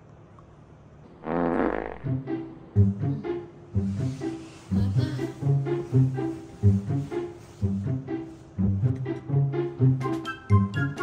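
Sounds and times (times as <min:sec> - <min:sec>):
comic fart sound: 0:01.1 - 0:02.2.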